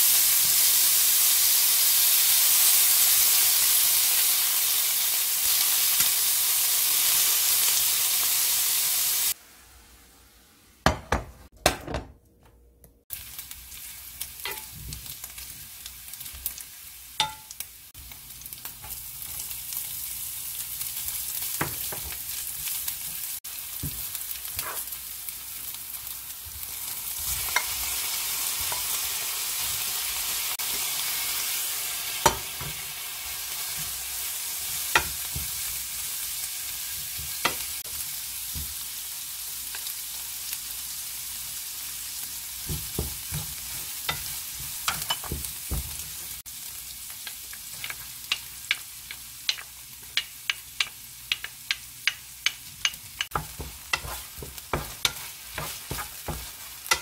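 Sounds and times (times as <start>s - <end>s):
food sizzling in a frying pan: 0.0s - 11.1s, 13.1s - 57.0s
wooden spatula scraping a pan: 53.3s - 57.0s.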